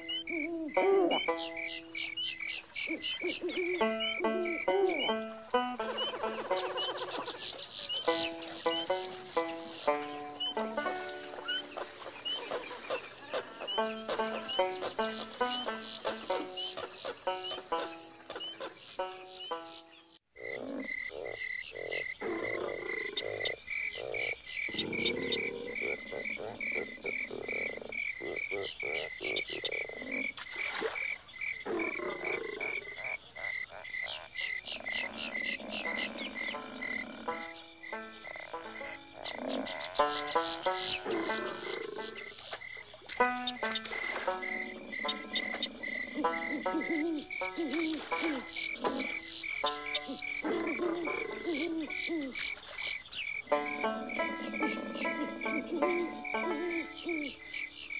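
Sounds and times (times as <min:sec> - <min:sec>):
frogs croaking: 0:00.0 - 0:57.9
insects chirping: 0:00.0 - 0:57.9.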